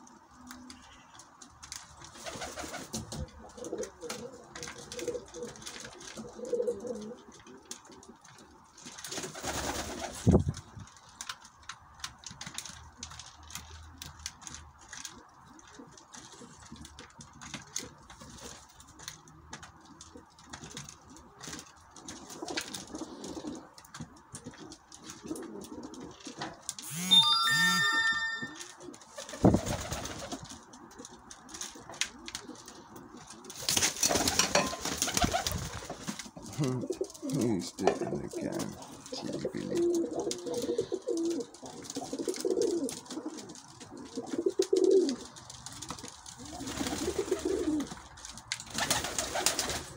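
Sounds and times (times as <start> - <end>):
pigeons cooing: 2.1 - 8.1, 22.1 - 23.8, 36.4 - 45.4, 46.0 - 48.1
high ringing tone: 26.8 - 28.8
rustling bursts: 33.5 - 36.4.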